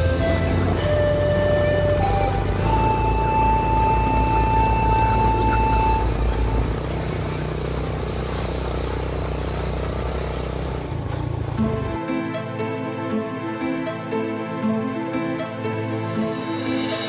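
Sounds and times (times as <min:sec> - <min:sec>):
music: 0:00.0 - 0:06.8, 0:11.5 - 0:17.0
motorbike engine running: 0:00.0 - 0:12.0.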